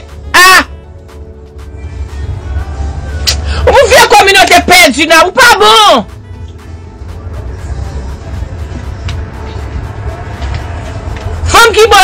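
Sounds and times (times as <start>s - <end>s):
faint music: 0.0s - 12.0s
car rumbling: 1.0s - 12.0s.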